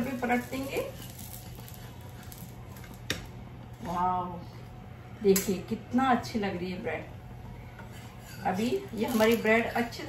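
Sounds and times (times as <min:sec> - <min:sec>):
spatula turning toast on pan: 0:00.0 - 0:03.3.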